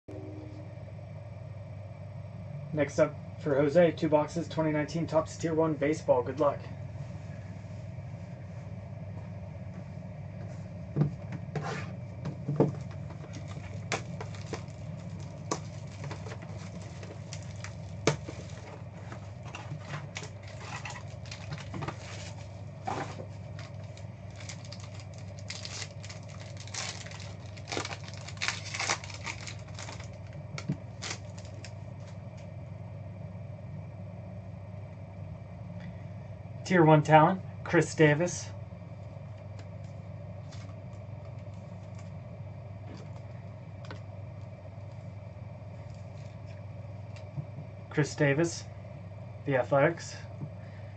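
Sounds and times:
steady low hum: 0:00.0 - 0:50.9
card pack crinkling and tapping: 0:12.3 - 0:32.2.

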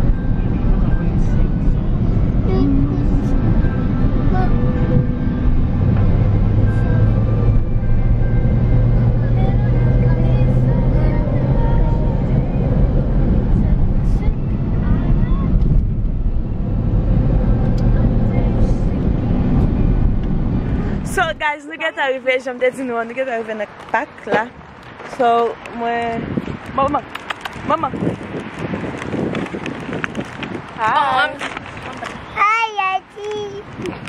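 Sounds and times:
car interior rumble: 0:00.0 - 0:34.0.

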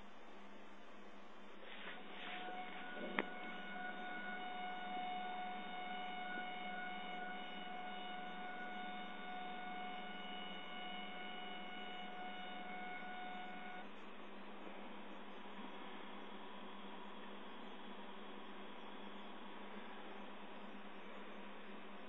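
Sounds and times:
stepper motor high-pitched whine: 0:01.7 - 0:14.0.

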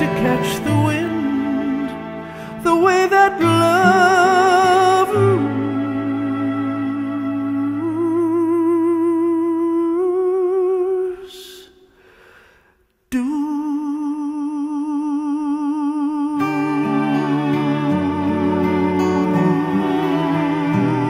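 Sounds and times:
low instrumental accompaniment: 0:00.0 - 0:09.0, 0:16.4 - 0:21.0
woman singing wordless notes: 0:16.3 - 0:21.0.

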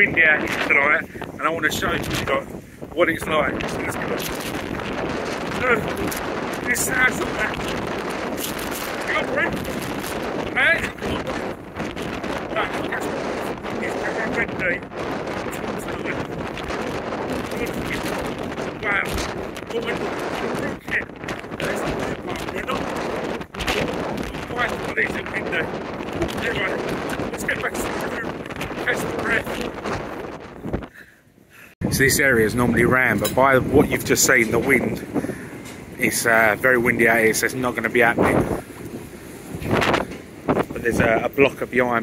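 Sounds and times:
strong wind on microphone: 0:00.0 - 0:31.1, 0:31.7 - 0:42.0.

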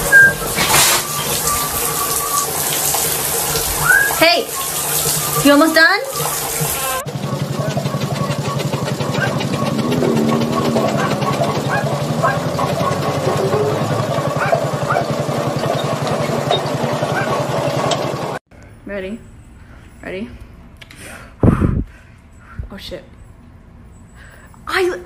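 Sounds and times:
road roller diesel engine running: 0:06.1 - 0:18.4.

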